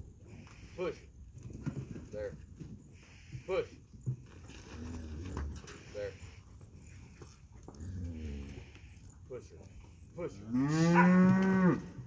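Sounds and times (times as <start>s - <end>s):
cows mooing: 10.4s - 12.0s.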